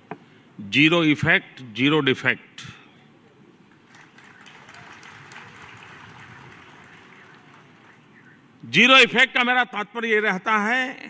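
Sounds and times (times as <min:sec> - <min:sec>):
faint audience applause: 0:03.7 - 0:08.4.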